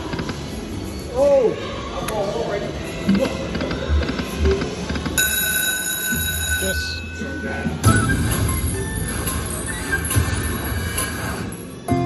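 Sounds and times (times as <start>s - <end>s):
steady high ringing tone: 5.2s - 10.3s.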